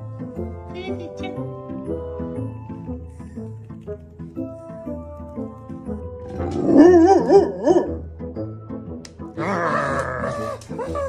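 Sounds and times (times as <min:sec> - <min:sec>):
dog howling: 0:06.4 - 0:08.0, 0:09.4 - 0:11.0.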